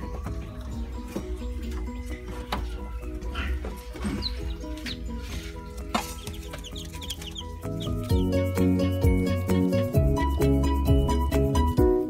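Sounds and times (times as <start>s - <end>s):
chicks peeping: 0.0s - 9.9s
background music: 0.0s - 12.0s.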